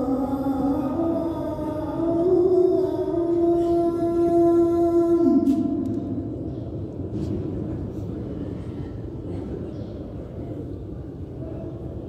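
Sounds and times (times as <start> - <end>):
low crowd rumble: 5.4 - 12.0.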